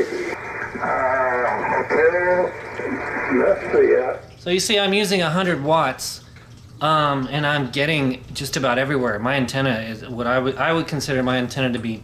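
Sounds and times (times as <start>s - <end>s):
radio speech with warbling quality: 0.0s - 4.2s.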